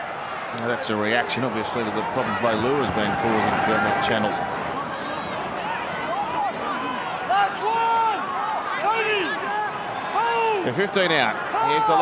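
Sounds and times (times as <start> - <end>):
stadium crowd noise: 0.0 - 12.0
man talking: 0.6 - 4.4.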